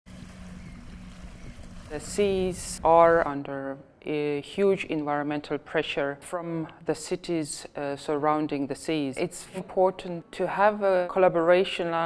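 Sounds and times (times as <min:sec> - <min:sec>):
small waves lapping on sand: 0:00.1 - 0:03.3.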